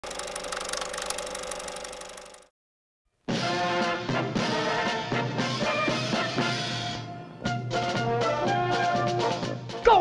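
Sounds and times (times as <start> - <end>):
rapid mechanical clatter: 0.0 - 2.5.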